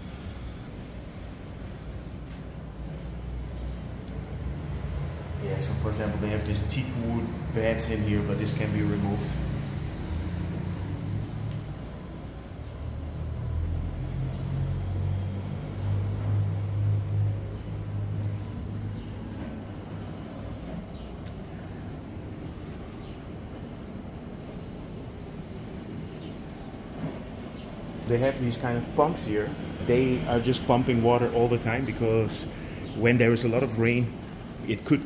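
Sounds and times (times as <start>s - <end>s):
machine hum with rumble: 0.0s - 34.9s.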